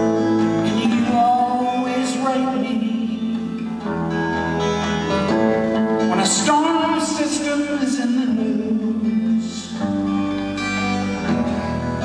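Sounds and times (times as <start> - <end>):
guitar chords: 0.0 - 12.0.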